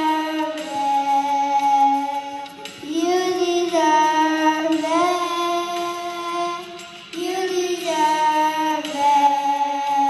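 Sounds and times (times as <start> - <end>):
children singing into microphones: 0.0 - 10.0.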